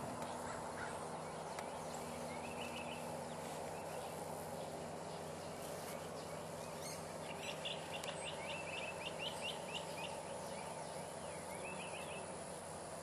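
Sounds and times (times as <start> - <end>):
bird chirping: 0.0 - 13.0
outdoor background noise: 0.0 - 13.0.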